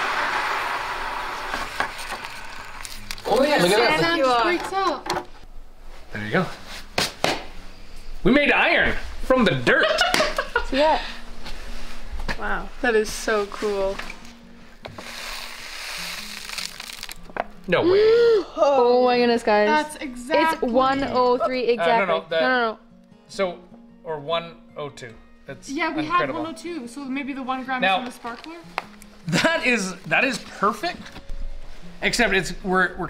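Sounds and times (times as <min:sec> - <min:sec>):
hot metal hissing in water: 0:00.0 - 0:02.8, 0:14.9 - 0:17.2
quiet background music: 0:01.9 - 0:33.0.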